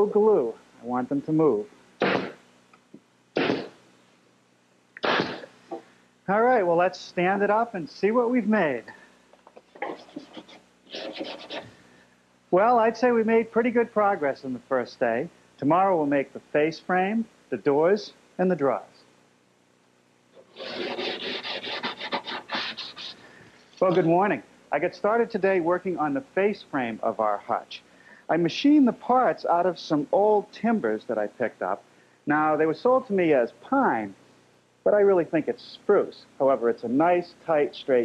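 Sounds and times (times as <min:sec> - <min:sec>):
pneumatic nailer shots: 0:03.4 - 0:03.7, 0:05.0 - 0:05.5
rubbing on wooden surface: 0:09.8 - 0:11.7, 0:20.4 - 0:23.2.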